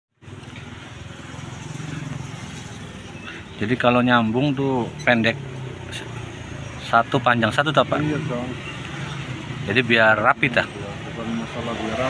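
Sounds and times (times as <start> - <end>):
motorcycle engine rumble: 0.2 - 11.9.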